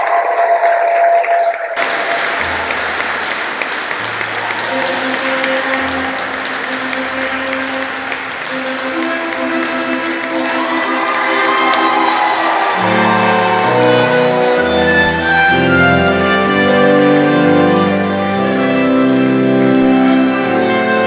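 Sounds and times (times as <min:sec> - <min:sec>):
congregation applauding: 0:00.0 - 0:21.0
music with long held notes: 0:01.9 - 0:21.0.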